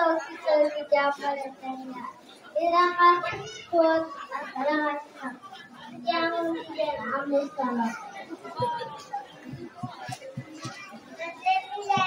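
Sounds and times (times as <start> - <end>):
child speaking: 0.0 - 5.4, 11.2 - 12.0
children chattering: 0.0 - 12.0.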